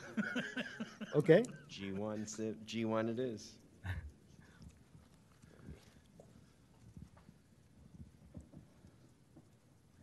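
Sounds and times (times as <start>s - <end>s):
faint soft knocks and taps: 4.9s - 9.6s.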